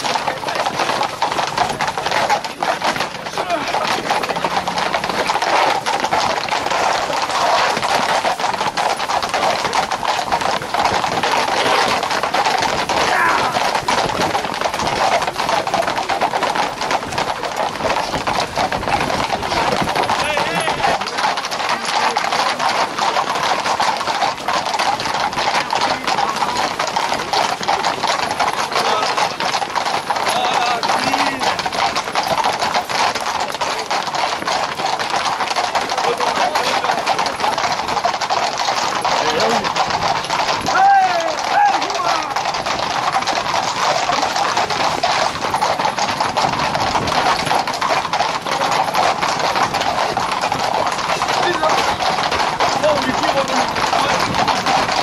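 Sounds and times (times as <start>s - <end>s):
crowd voices: 0.0s - 46.5s
hooves clattering on asphalt: 0.0s - 55.0s.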